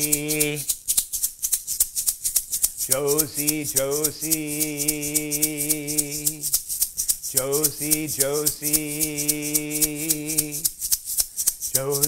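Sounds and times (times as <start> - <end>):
person singing: 0.0 - 0.7, 2.8 - 6.6, 7.3 - 10.7, 11.7 - 12.0
hand-held shaker rhythm: 0.0 - 12.0.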